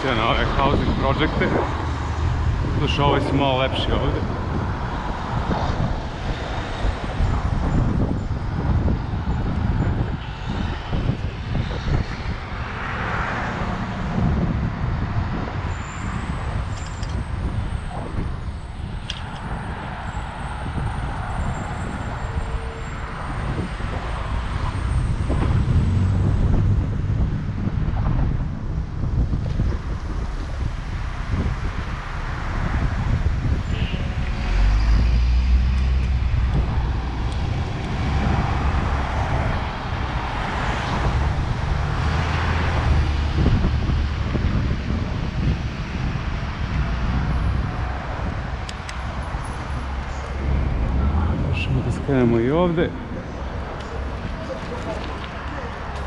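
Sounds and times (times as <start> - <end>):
road traffic passing: 0.0 - 56.0
wind rumble on microphone: 0.0 - 56.0.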